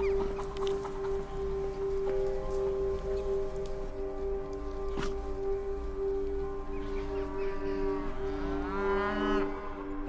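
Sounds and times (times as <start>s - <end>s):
cow mooing: 7.6s - 9.5s.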